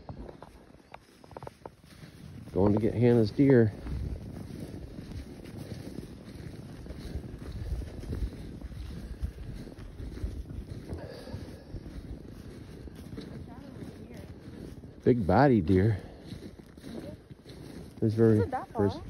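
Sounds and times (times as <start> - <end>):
footsteps crunching through snow: 0.0 - 19.0
wind noise on microphone: 2.2 - 15.0.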